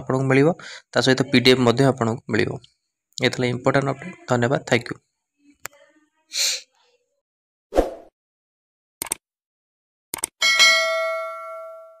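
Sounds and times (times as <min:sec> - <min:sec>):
bell ding: 0:10.4 - 0:12.0.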